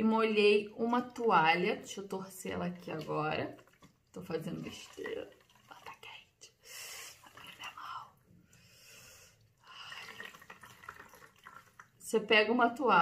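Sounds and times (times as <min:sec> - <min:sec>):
water dripping and trickling: 0:00.8 - 0:06.3, 0:07.2 - 0:08.2, 0:09.7 - 0:12.1
towel being wrung out: 0:02.9 - 0:05.9, 0:09.8 - 0:11.9.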